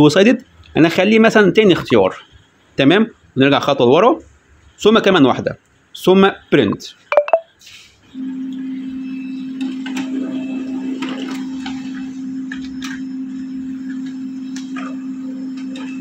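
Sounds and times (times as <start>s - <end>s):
printer motor hum: 8.2s - 16.0s.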